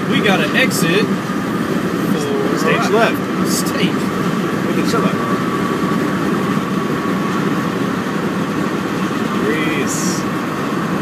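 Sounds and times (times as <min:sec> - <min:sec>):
car cabin road and engine noise: 0:00.0 - 0:11.0.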